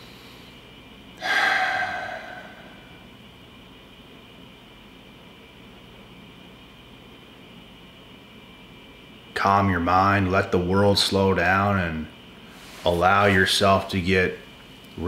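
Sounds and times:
man exhaling: 1.2 - 3.1.

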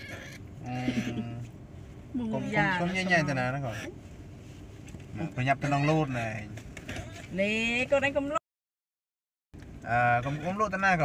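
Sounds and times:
macaque squeaking: 0.0 - 1.4, 2.3 - 4.0, 10.1 - 10.7.

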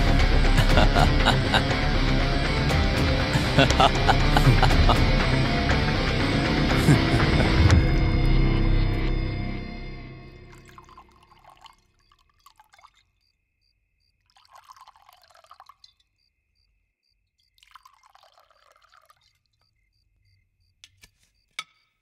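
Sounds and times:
liquid pouring into glass: 10.4 - 13.0, 14.3 - 16.0, 17.6 - 19.4.

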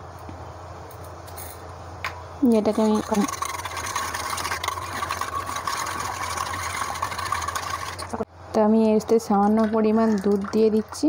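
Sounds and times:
whisk beating in a steel bowl: 2.5 - 8.2.

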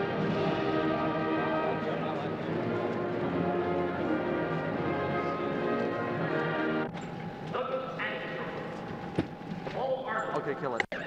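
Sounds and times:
brass band playing processional music: 0.0 - 6.9.

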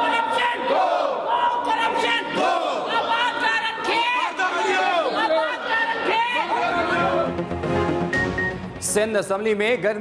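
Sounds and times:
protesters shouting a slogan: 0.0 - 7.4.

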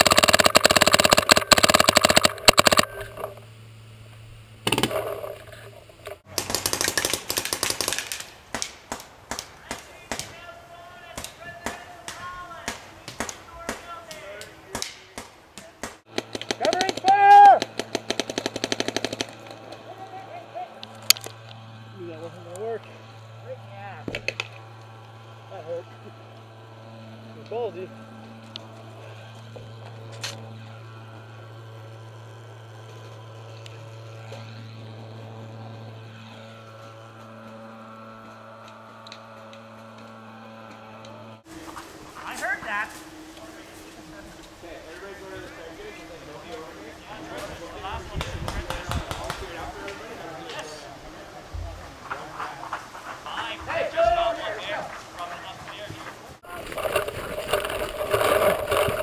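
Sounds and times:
paintball markers firing: 0.0 - 3.4, 4.6 - 5.4, 6.3 - 10.4, 11.1 - 19.8
low steady hum: 0.0 - 59.0
distant shouts: 9.5 - 18.1, 19.2 - 56.8
loud shout: 16.6 - 17.7.

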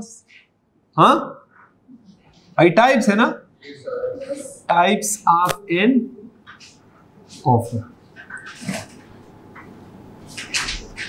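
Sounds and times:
marker pen squeaking on whiteboard: 6.4 - 7.0, 8.1 - 9.7, 10.3 - 11.0.

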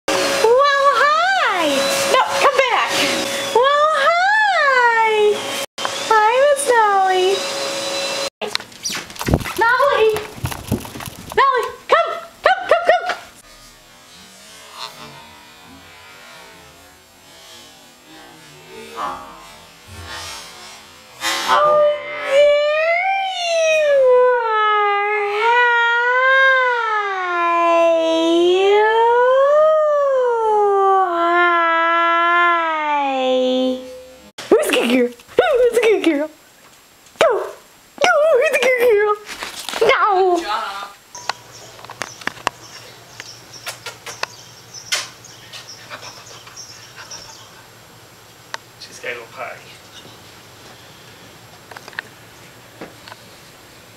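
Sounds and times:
person wailing like a siren: 21.5 - 33.2.

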